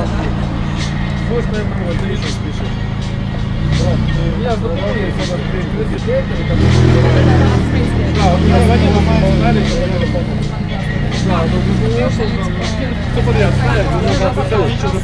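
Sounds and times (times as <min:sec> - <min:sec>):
bass-heavy music from sound system: 0:00.0 - 0:15.0
people talking: 0:00.0 - 0:15.0.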